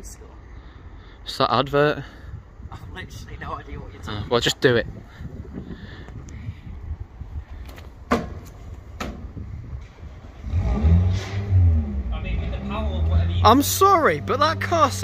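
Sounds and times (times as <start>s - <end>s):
sharp knocks: 8.1s - 9.3s
car engine revving: 10.1s - 15.0s.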